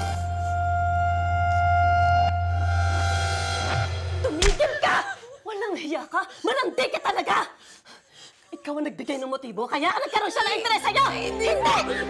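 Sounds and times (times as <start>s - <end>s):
background music: 0.0s - 5.3s, 10.2s - 12.0s
sharp slap: 4.3s - 4.9s.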